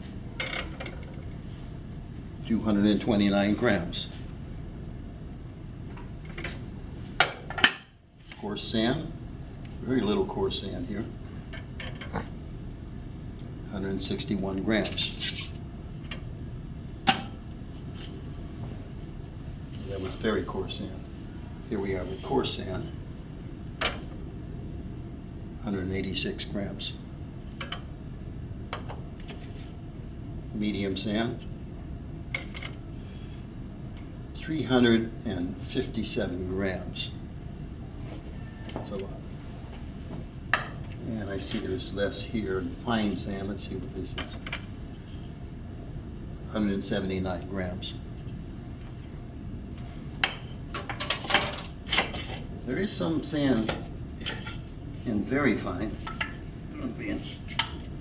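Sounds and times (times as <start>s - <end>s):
low steady background hum: 0.0s - 58.0s.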